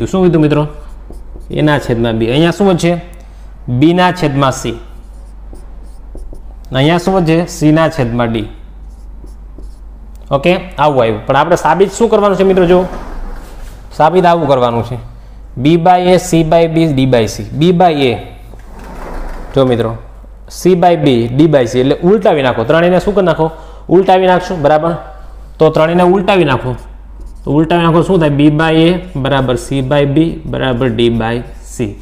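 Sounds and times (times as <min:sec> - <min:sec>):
man speaking: 0:00.0 - 0:05.0, 0:06.7 - 0:08.7, 0:10.3 - 0:13.0, 0:13.9 - 0:18.5, 0:19.6 - 0:32.0
man talking: 0:00.0 - 0:05.0, 0:06.7 - 0:08.7, 0:10.2 - 0:13.0, 0:13.9 - 0:18.5, 0:19.6 - 0:32.0
marker writing on whiteboard: 0:00.4 - 0:02.1, 0:04.6 - 0:07.2, 0:08.5 - 0:10.0, 0:26.6 - 0:27.8, 0:30.3 - 0:31.5.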